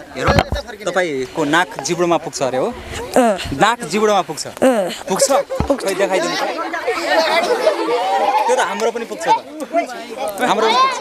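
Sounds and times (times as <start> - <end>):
crowd of children chattering: 0.0 - 11.0.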